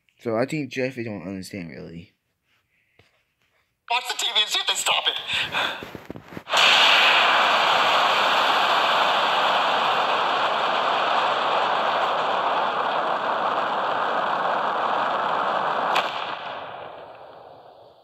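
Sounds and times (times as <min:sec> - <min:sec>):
sharp crack: 0:06.4 - 0:18.0
rocket engine rushing: 0:06.5 - 0:18.0.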